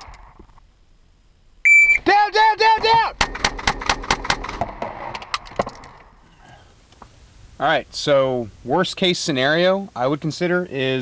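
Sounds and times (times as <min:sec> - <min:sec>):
quiet car cab noise: 0:06.2 - 0:11.0.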